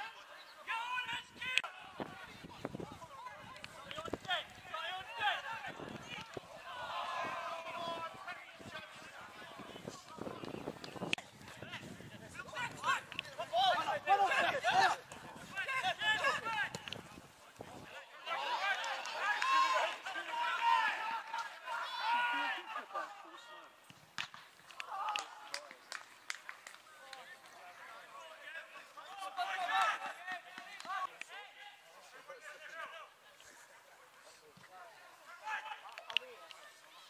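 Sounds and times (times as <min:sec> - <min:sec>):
people shouting on a pitch: 0:00.0 - 0:09.9, 0:11.5 - 0:16.9, 0:17.9 - 0:23.8, 0:27.6 - 0:31.8.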